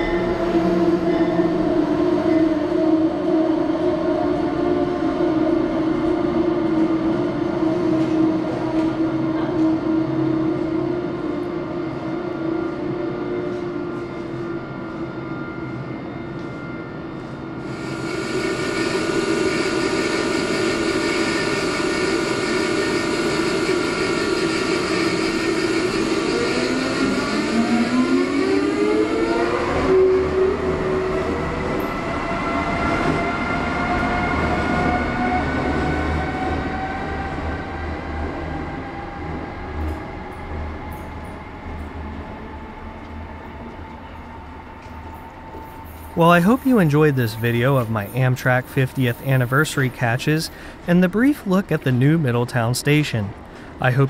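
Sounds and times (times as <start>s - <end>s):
electric locomotive motors whining: 0.0s - 52.1s
passenger train humming: 0.0s - 54.0s.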